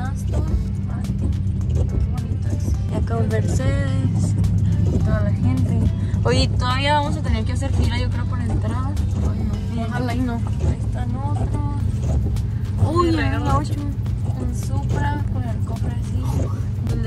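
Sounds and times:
car engine droning: 0.0 - 17.0
music with wavering singing voice: 0.0 - 17.0.

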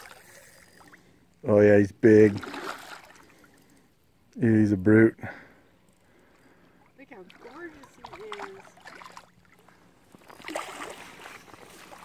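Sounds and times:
fish splashing in water: 2.3 - 3.5, 7.3 - 12.0.

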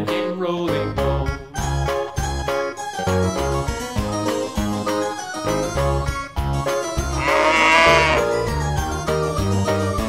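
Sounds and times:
children's keyboard song: 0.0 - 10.0
farm animal bleating: 7.1 - 8.5.

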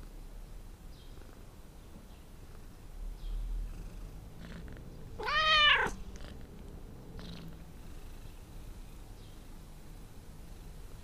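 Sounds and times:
animal cry rising and falling: 5.2 - 6.0.

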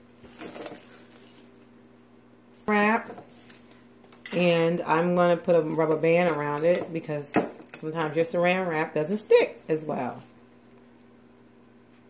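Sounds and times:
plastic wrap crinkling: 0.0 - 1.9
low steady hum: 0.0 - 12.0.

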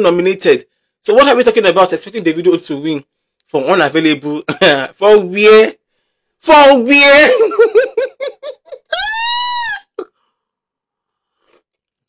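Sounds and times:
man laughing: 7.0 - 10.1.

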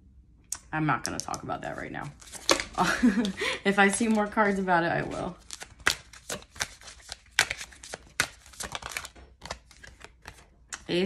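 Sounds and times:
cards being shuffled: 2.0 - 10.9.

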